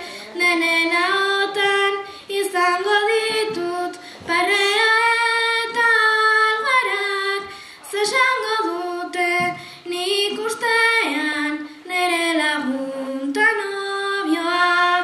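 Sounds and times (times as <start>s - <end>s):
girl singing unaccompanied: 0.0s - 15.0s.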